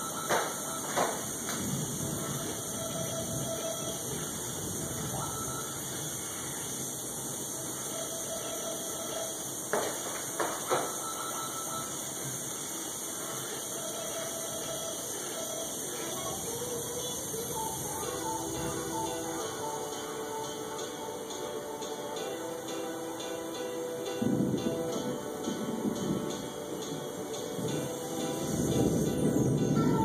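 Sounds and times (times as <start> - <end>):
steady hiss: 0.0 - 30.0.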